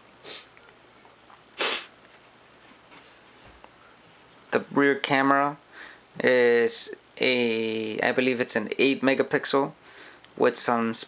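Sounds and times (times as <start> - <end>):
short sharp sniff: 0.2 - 0.5, 1.6 - 2.0.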